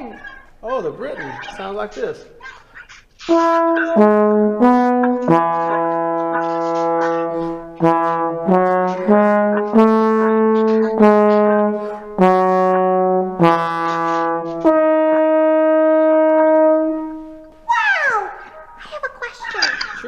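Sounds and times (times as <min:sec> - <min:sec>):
trombone playing a tune: 0:03.2 - 0:17.5.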